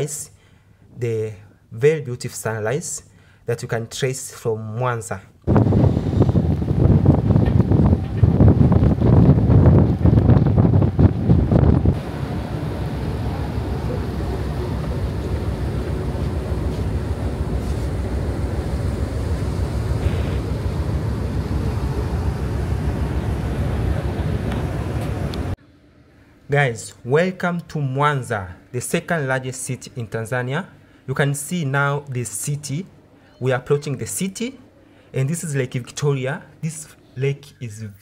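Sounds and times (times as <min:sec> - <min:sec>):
water rushing along hull: 0:05.5 - 0:25.6
wind buffeting microphone: 0:05.5 - 0:25.6
faint engine hum: 0:05.6 - 0:26.5.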